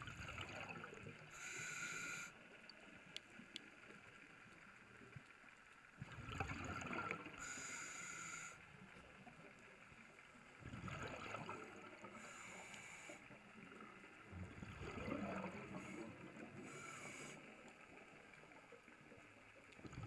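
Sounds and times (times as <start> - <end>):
exhaled bubbles rushing: 0.0 - 1.2, 6.0 - 7.4, 10.6 - 12.1, 14.4 - 16.4
faint sea hiss: 0.0 - 5.8, 6.6 - 19.8
diver breathing underwater: 1.3 - 2.4, 7.3 - 8.6, 11.2 - 13.4, 14.9 - 17.6.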